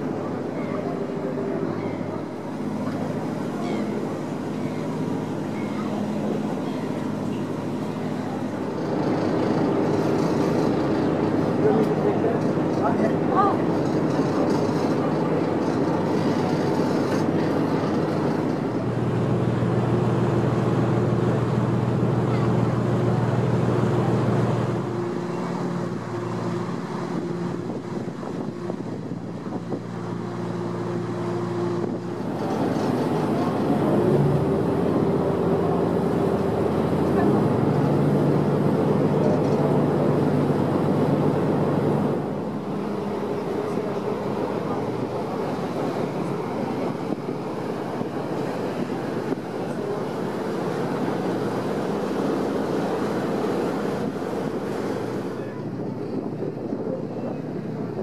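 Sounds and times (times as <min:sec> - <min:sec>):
boat engines running: 0:00.0 - 0:58.0.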